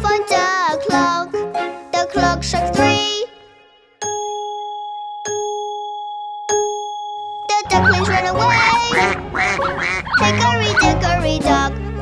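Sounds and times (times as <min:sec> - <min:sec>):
clock bell striking: 0:04.1 - 0:09.2.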